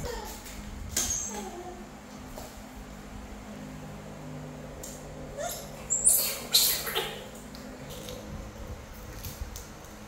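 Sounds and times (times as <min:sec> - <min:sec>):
macaque harsh squeals: 0:05.4 - 0:07.3
macaque squeaking: 0:05.4 - 0:07.3.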